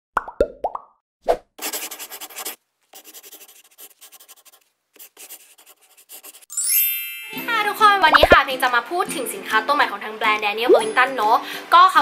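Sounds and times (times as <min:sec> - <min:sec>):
pen scribbling sound effect: 0:01.6 - 0:06.5.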